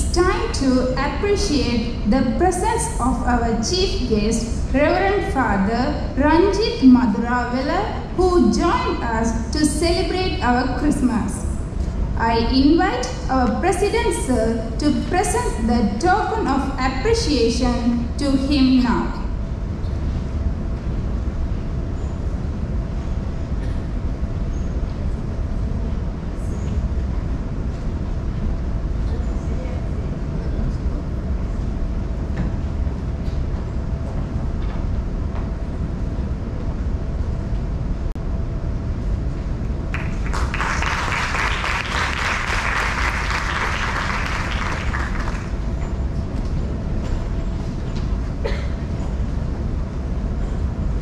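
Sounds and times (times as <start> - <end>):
faint steady hum: 0.0 - 51.0
low hall rumble: 0.0 - 51.0
audience applause: 39.9 - 45.6.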